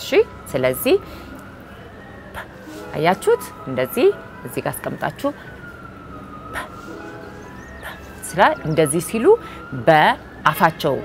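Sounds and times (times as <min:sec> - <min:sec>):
woman speaking: 0:00.0 - 0:01.0, 0:02.4 - 0:05.4, 0:07.9 - 0:11.0
distant siren wailing: 0:00.0 - 0:11.0.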